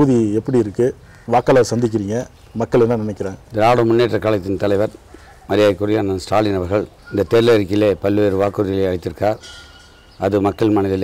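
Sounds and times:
man speaking: 0.0s - 9.4s, 10.2s - 11.0s.

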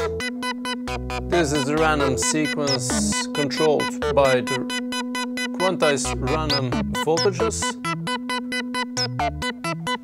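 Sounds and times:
deep bass notes: 6.1s - 8.1s.

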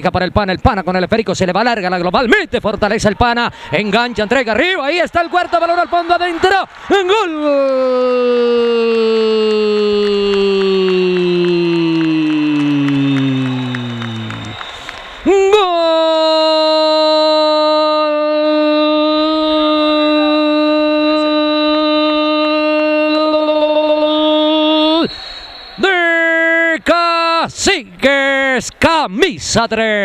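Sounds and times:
commentator shouting goal: 1.6s - 14.3s.

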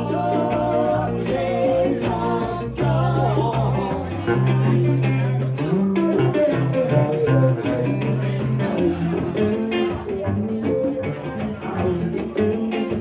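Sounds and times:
bass line: 0.0s - 13.0s
strummed acoustic guitar: 0.0s - 13.0s.

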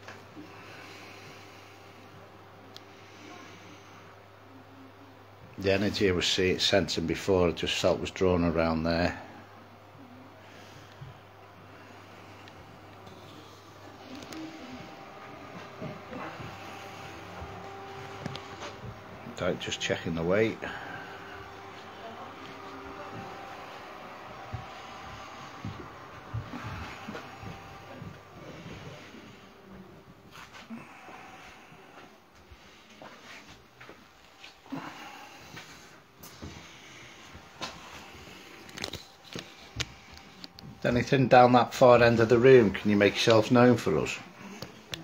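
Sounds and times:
room hiss: 0.0s - 44.9s
faint steady hum: 0.0s - 45.0s.

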